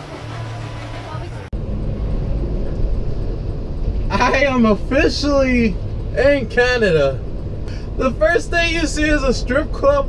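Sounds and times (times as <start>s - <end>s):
outdoor crowd chatter: 0.0s - 1.5s
van engine and road noise: 0.0s - 10.0s.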